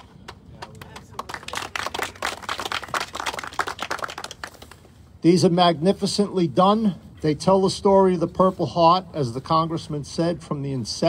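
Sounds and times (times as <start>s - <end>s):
people applauding: 0.6s - 4.9s.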